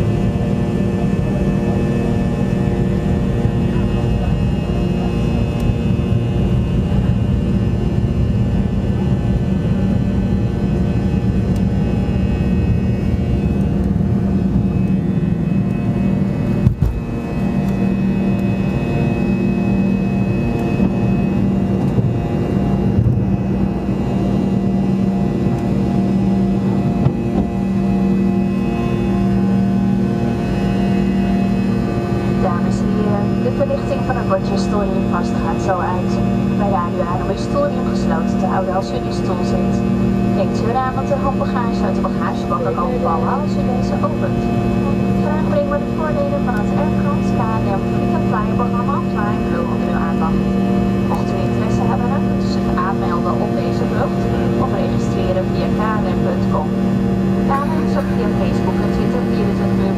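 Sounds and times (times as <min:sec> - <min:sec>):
jet engines roaring: 0:00.0 - 0:59.9.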